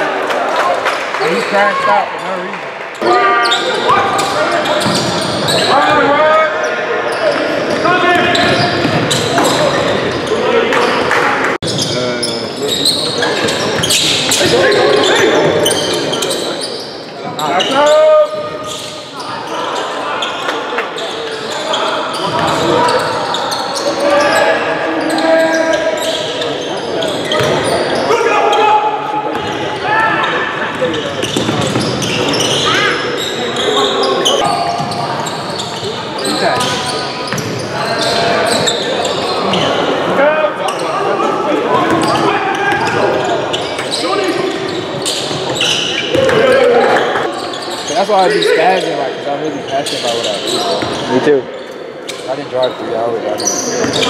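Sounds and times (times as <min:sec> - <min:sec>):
echoing crowd voices and shouts: 0:00.0 - 0:54.0
loud shout: 0:28.0 - 0:30.7.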